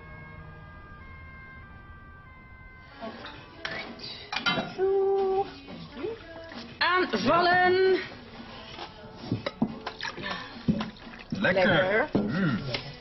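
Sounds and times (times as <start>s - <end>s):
soft music with held notes: 1.7s - 13.0s
plates clattering: 3.6s - 4.8s
people talking: 11.4s - 12.6s.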